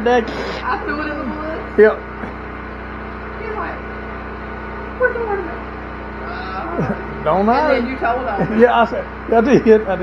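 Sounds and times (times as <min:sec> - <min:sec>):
faint voices: 0:00.0 - 0:02.3
generator humming: 0:00.0 - 0:10.0.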